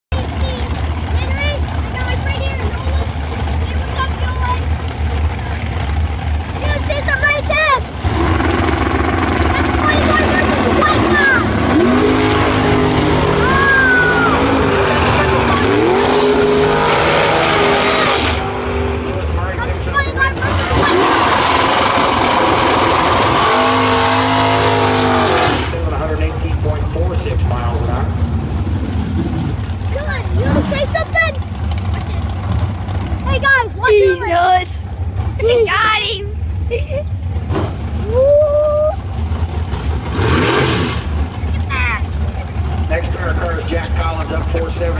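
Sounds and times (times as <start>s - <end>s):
drag racing cars at full throttle: 0.1s - 44.9s.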